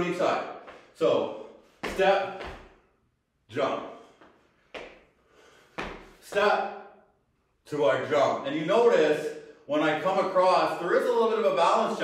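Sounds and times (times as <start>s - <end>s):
feet thudding on rubber floor: 1.7s - 2.9s, 4.0s - 6.5s.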